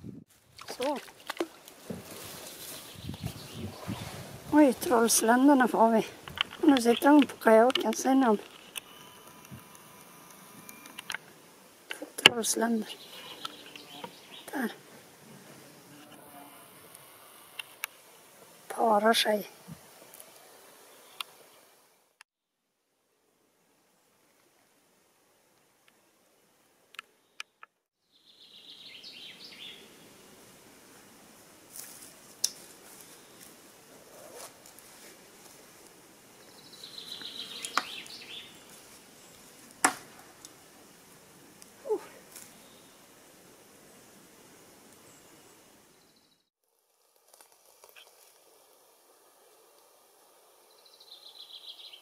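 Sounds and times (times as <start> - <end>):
small bird chirping: 2.6 - 11.1, 12.4 - 14.7, 27.2 - 29.9, 36.4 - 39.4, 50.7 - 52.0.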